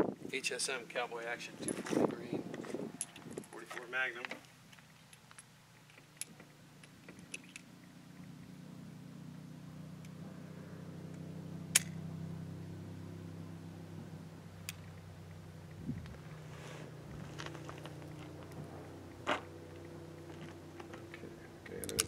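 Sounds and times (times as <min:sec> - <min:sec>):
low engine hum: 0:00.0 - 0:22.0
metallic clicks of revolver handling: 0:04.4 - 0:07.7, 0:11.1 - 0:12.0, 0:14.6 - 0:15.1, 0:21.1 - 0:22.0.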